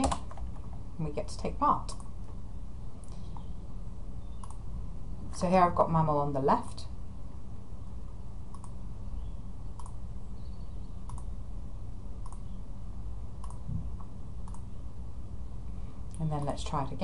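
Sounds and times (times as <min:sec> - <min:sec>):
low background hum: 0:00.0 - 0:17.0
computer mouse clicking: 0:04.4 - 0:04.6, 0:08.5 - 0:08.8, 0:09.8 - 0:10.0, 0:11.0 - 0:11.3, 0:12.2 - 0:12.5, 0:13.4 - 0:14.7.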